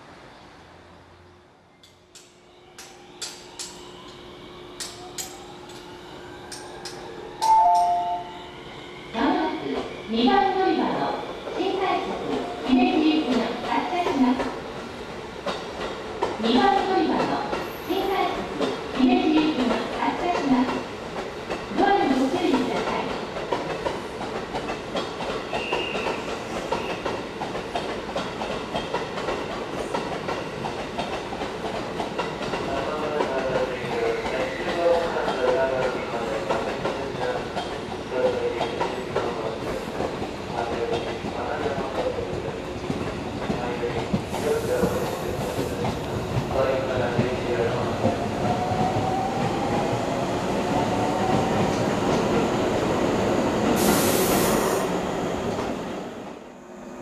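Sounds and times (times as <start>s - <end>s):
train brakes squealing: 1.7s - 10.1s, 25.4s - 27.2s, 33.6s - 35.2s, 44.3s - 45.8s, 53.7s - 55.0s
train wheels clattering over rails: 18.5s - 55.8s.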